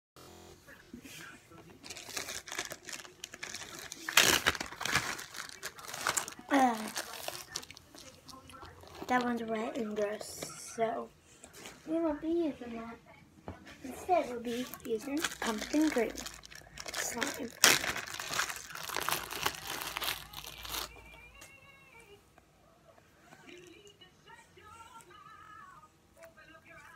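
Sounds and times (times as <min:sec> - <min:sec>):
faint music with singing: 0:00.2 - 0:26.9
plastic bag crinkling: 0:01.7 - 0:09.4, 0:14.5 - 0:21.2.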